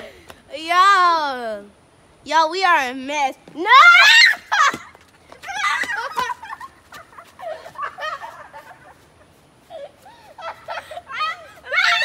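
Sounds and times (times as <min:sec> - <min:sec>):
girls shrieking: 0:03.6 - 0:06.6, 0:09.7 - 0:12.0.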